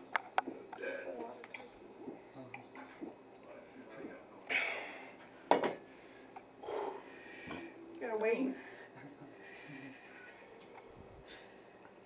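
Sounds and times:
glass knocking on counter: 0:05.5 - 0:05.8.

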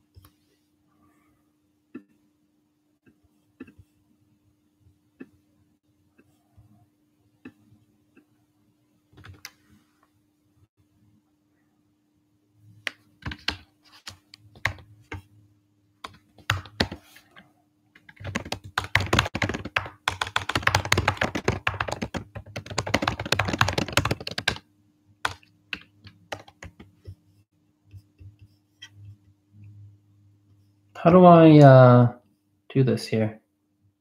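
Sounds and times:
faint steady hum: 0:00.0 - 0:34.0
typing on computer keyboard: 0:16.0 - 0:17.0, 0:18.0 - 0:24.6, 0:25.2 - 0:26.9.

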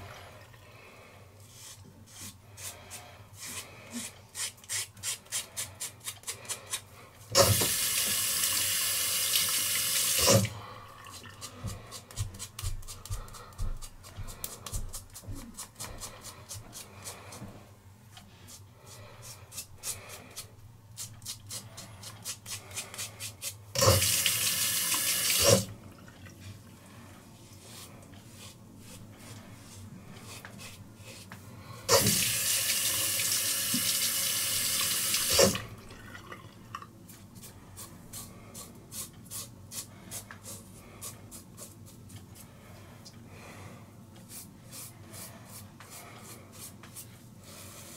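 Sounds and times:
faucet running: 0:07.4 - 0:10.4, 0:31.9 - 0:36.4.

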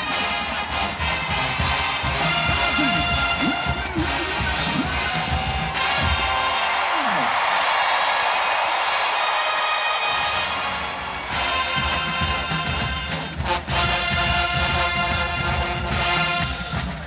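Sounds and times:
marching band brass and drums: 0:00.0 - 0:17.0
stadium crowd cheering: 0:00.0 - 0:17.0.

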